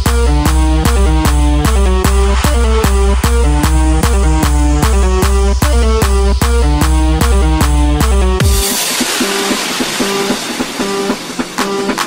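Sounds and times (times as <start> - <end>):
noise wash: 0.6 - 6.0.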